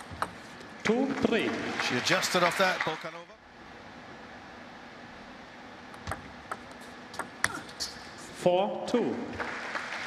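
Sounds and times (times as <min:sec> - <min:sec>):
low background hum: 0:00.0 - 0:10.0
table tennis ball ticking: 0:05.9 - 0:07.6.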